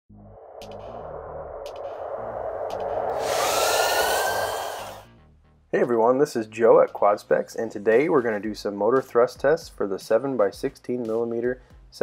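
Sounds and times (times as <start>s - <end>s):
synthesized whoosh: 0.1s - 5.2s
low tones: 0.1s - 5.7s
gliding tones: 0.2s - 5.1s
bright rushing hiss: 1.7s - 5.0s.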